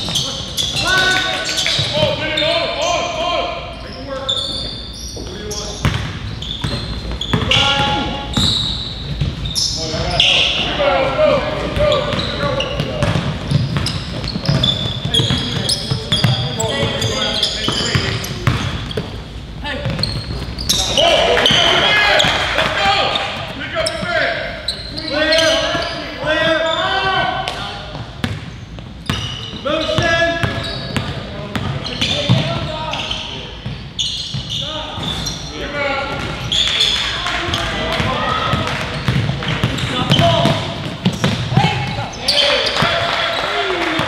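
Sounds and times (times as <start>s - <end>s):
sneakers squeaking: 0.0s - 44.0s
basketball bouncing on wooden floor: 12.8s - 17.1s, 37.5s - 42.0s.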